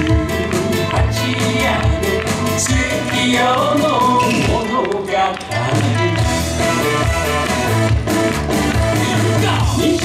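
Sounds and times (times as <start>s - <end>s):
dance music over loudspeakers: 0.0s - 10.0s.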